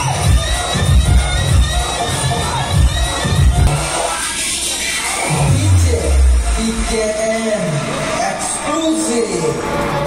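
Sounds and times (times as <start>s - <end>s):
heavy bass beat: 0.0s - 7.9s
crowd shouting and cheering: 0.0s - 10.0s.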